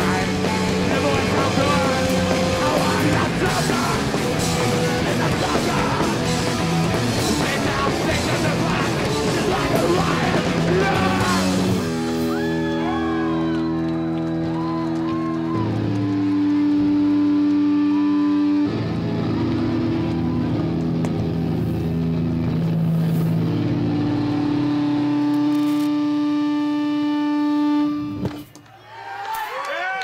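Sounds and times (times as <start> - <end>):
electric amplifier drone: 0.0 - 28.6.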